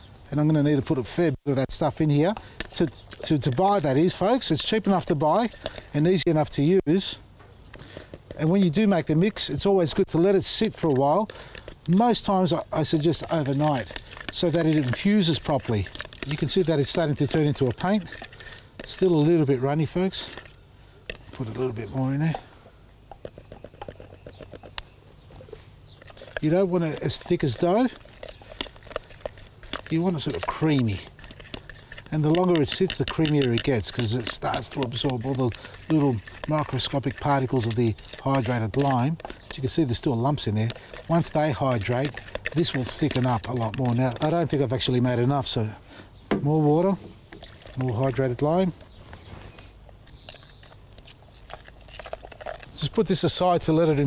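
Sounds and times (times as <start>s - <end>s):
powder poured into tub: 1.8s - 7.1s, 7.8s - 20.5s, 26.1s - 45.8s.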